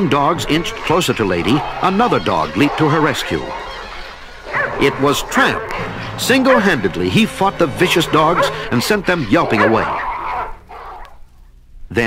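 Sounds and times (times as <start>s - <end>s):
dogs yelping: 0.0s - 11.4s.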